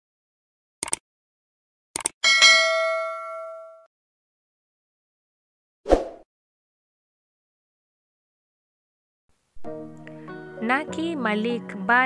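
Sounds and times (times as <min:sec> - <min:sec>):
bright bell ding: 0:02.2 - 0:03.9.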